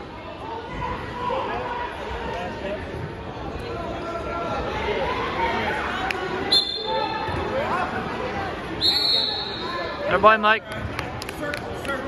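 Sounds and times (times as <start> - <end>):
crowd chatter: 0.0 - 12.0
referee's whistle blasts: 6.5 - 7.2, 8.8 - 9.8.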